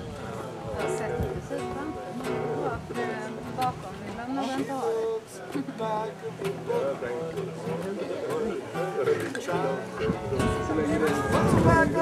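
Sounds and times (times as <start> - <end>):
strummed acoustic guitar: 0.0 - 12.0
man singing: 4.6 - 12.0.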